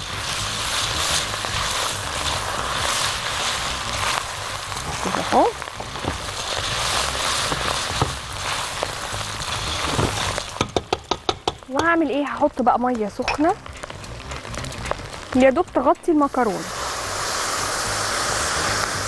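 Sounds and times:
food sizzling in a pot: 0.0s - 19.0s
utensil clicking against pot: 10.4s - 12.1s.

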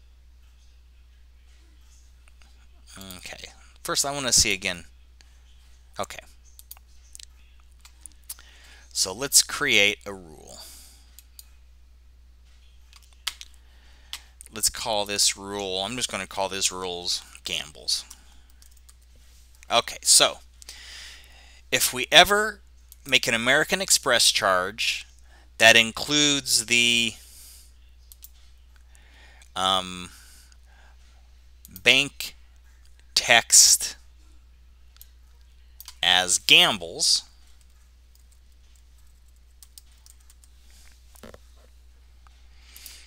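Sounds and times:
low steady hum: 0.0s - 43.0s.

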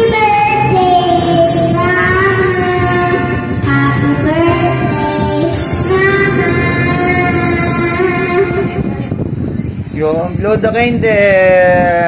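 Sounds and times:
girl singing into microphone: 0.0s - 9.2s
karaoke backing music: 0.0s - 12.0s.

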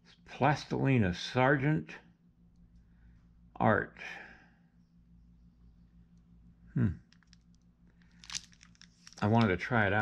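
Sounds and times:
plastic wrapping crinkling: 7.2s - 9.6s.

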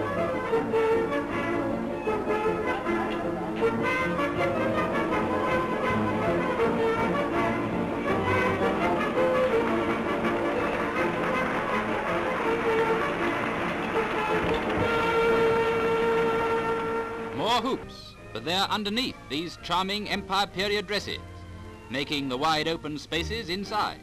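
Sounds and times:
dance band music with brass: 3.7s - 17.7s.

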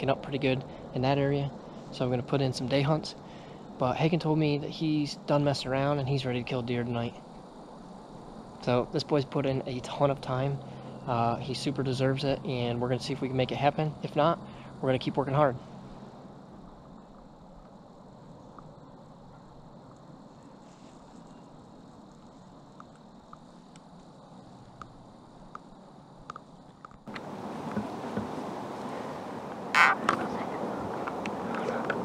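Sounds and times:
rough hiss with crackles: 0.0s - 32.0s
small ticks: 16.8s - 27.8s.

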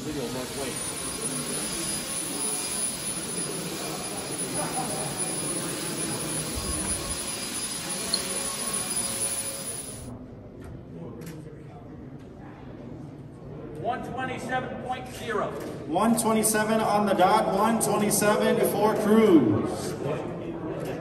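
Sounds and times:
high steady whine: 0.0s - 10.1s
steady rushing noise: 0.0s - 10.1s
faint indistinct voices: 0.0s - 21.0s.

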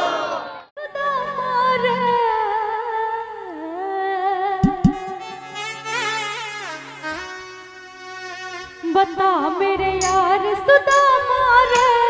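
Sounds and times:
drum strikes: 4.6s - 5.2s.

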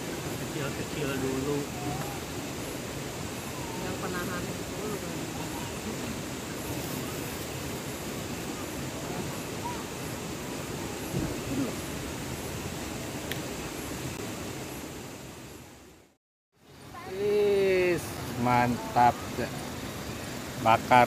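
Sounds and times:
faint distant voices: 3.4s - 11.9s.

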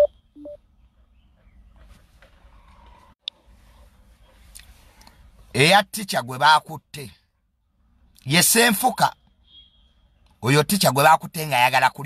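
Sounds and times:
rising electronic beeps: 0.0s - 0.6s.

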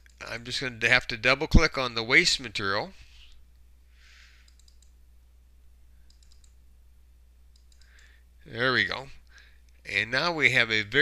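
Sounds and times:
low steady hum: 0.0s - 11.0s
computer mouse clicks: 4.4s - 5.0s, 6.1s - 6.6s, 7.5s - 8.2s.

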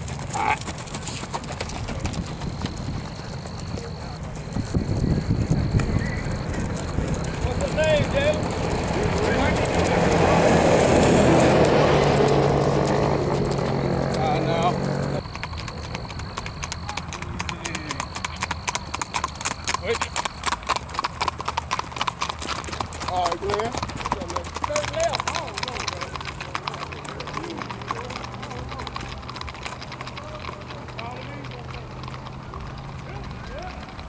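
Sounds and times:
horse hooves clip-clopping on asphalt: 0.0s - 34.0s
steady rumble: 1.6s - 15.3s.

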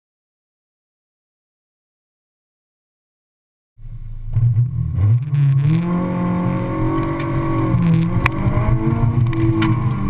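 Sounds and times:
car engine running hard: 3.8s - 10.0s.

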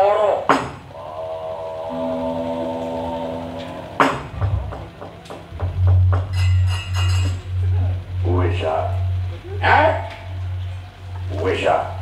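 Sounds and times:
long held musical note: 1.0s - 12.0s.

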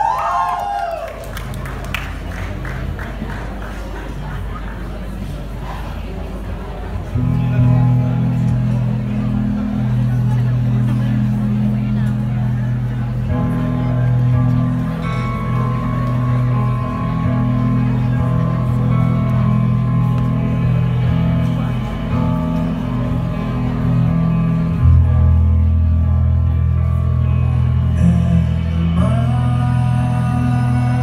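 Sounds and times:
rock band ringing chords: 7.2s - 31.0s.

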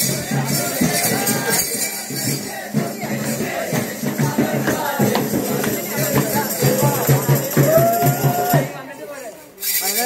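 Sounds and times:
men singing a carol: 0.0s - 8.6s
tambourine jingling: 0.0s - 8.8s, 9.6s - 10.0s
hand clapping: 4.7s - 8.4s.

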